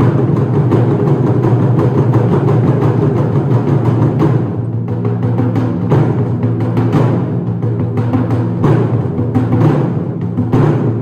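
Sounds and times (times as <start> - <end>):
taiko drums rumbling: 0.0 - 11.0.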